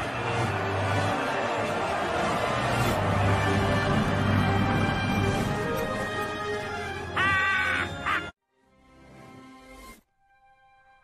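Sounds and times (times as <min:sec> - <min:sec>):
reversed film music: 0:00.0 - 0:08.2.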